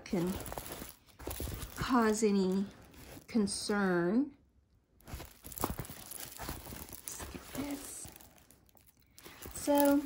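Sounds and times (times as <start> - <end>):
plastic film crinkling: 0.0 - 3.6, 5.0 - 10.0.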